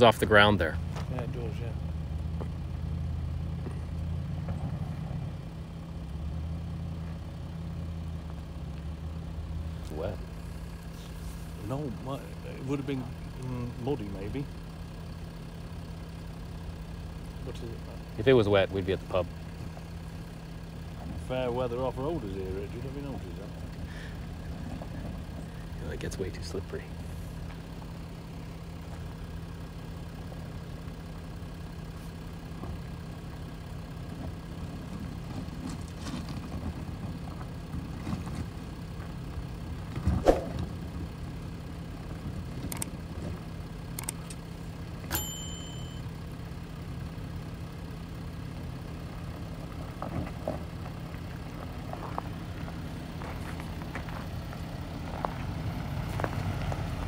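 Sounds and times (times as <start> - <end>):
gravel crunching under tyres: 0.0 - 46.0, 46.6 - 57.0
car engine humming: 0.0 - 57.0.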